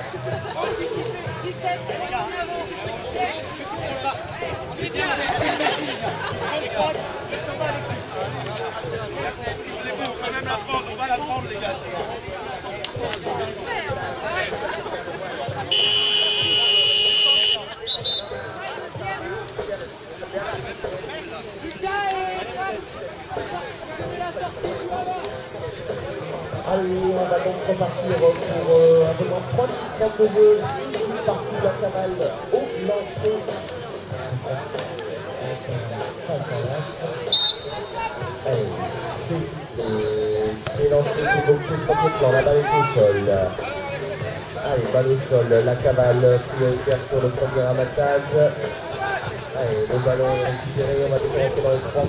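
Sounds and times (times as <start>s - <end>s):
spectators chattering: 0.0s - 52.0s
referee's whistle blast: 15.7s - 18.4s, 37.3s - 38.0s.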